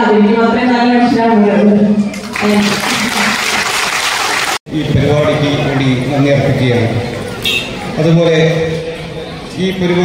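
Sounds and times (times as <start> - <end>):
audience applauding: 2.1 - 4.6.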